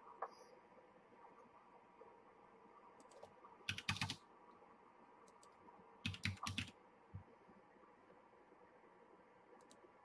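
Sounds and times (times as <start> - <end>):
computer keyboard keystrokes: 3.0 - 4.2, 5.3 - 6.7.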